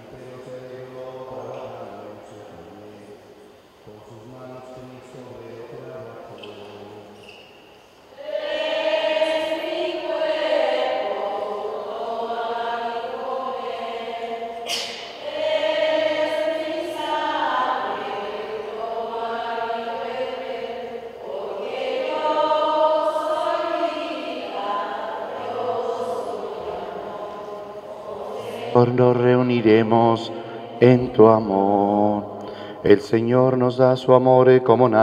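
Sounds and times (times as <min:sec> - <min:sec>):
voices singing a slow hymn: 0:00.0 - 0:35.0.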